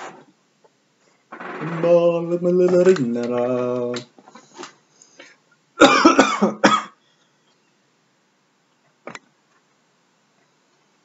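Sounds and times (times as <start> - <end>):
man coughing: 5.8 - 7.0.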